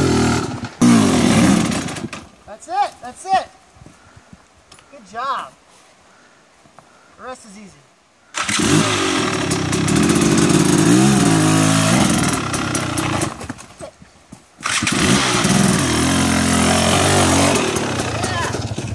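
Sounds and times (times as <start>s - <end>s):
dirt bike engine revving: 0.0s - 2.3s, 8.4s - 13.6s, 14.6s - 18.9s.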